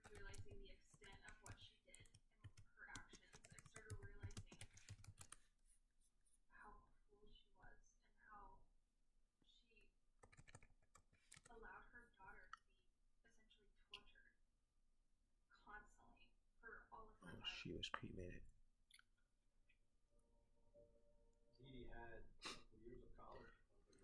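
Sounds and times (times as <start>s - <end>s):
faint voice: 15.6s - 18.4s.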